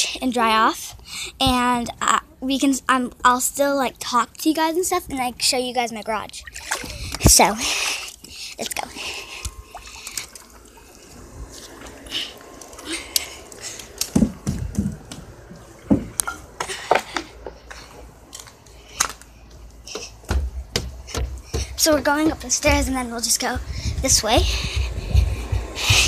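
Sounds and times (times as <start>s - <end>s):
low thumps: 19.9s - 26.0s.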